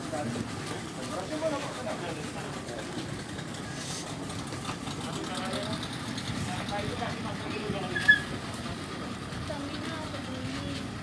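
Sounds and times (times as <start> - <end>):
boat engine idling: 0.0 - 11.0.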